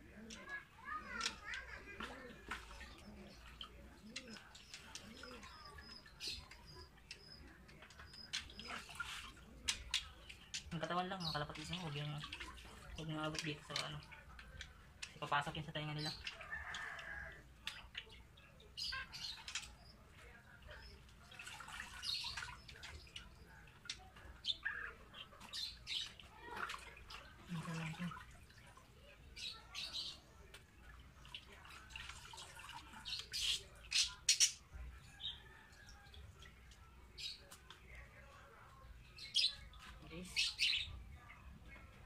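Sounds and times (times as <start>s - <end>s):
water splashing in a bucket: 0.0s - 33.9s.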